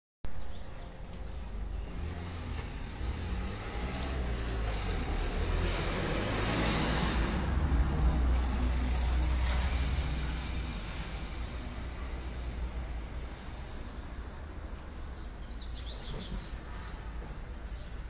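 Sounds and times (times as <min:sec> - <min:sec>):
vehicle engine passing: 0:01.3 - 0:14.6.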